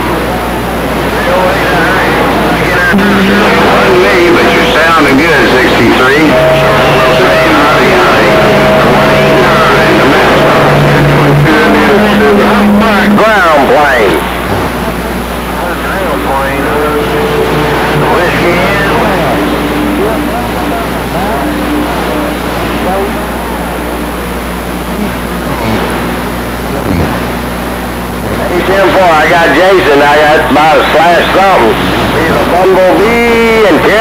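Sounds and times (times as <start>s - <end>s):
faint distant radio voices: 0.0s - 34.0s
radio static hiss: 0.0s - 34.0s.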